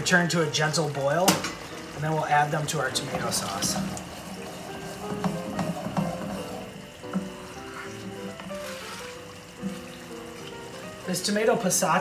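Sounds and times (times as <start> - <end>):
slow background music: 0.0 - 12.0
spoon knocking against pan: 5.1 - 6.5.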